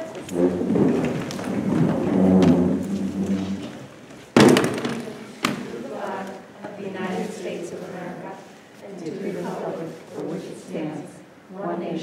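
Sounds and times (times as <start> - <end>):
chairs scraping on wooden floor: 0.0 - 5.7
loud thump: 4.4 - 5.7.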